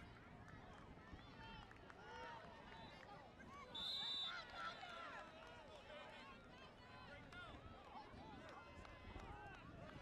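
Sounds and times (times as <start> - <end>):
referee's whistle blast: 3.8 - 4.4.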